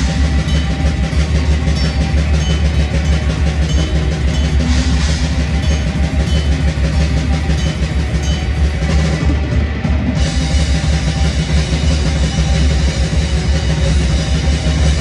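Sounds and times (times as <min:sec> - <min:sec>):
distorted electric guitars: 0:00.0 - 0:15.0
fast drumming: 0:00.0 - 0:15.0.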